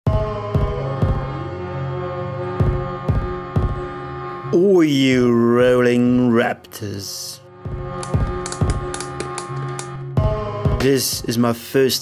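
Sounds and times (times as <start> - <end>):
background music with drum beat: 0.1 - 1.4, 2.6 - 4.0, 7.7 - 11.4.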